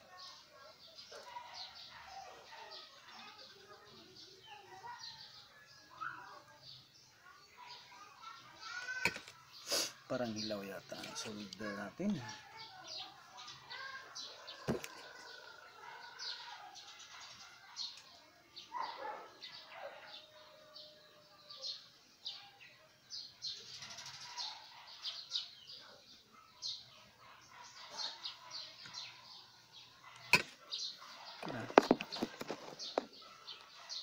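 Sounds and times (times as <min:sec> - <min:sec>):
birds chirping: 0:00.0 - 0:34.0.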